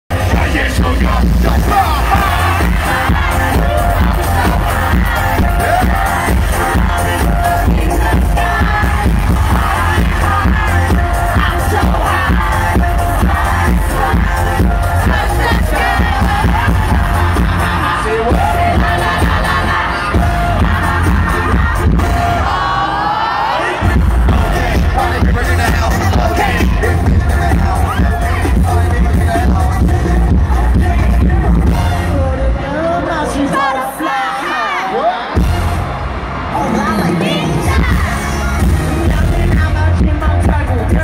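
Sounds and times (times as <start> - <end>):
heavy bass beat: 0.1 - 22.6, 23.8 - 32.4, 35.3 - 41.0
person singing into microphone: 0.1 - 35.3
crowd noise: 0.1 - 41.0
pop music over sound system: 0.1 - 41.0.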